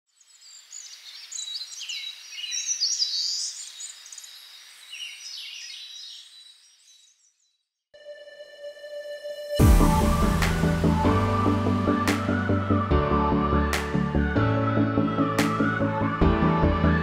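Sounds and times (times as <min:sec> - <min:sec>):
birds chirping and trilling: 0:00.1 - 0:07.8.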